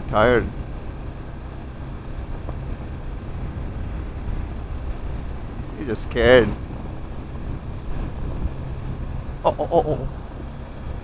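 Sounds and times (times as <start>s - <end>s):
motorcycle engine running: 0.0s - 11.0s
tyres rumbling on gravel: 0.0s - 11.0s
wind: 0.0s - 11.0s.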